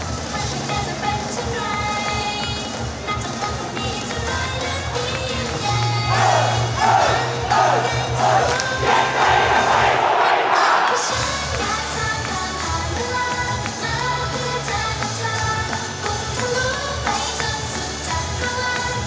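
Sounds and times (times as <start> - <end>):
crowd chanting: 5.9 - 11.5
pop backing track with bass: 11.2 - 19.0.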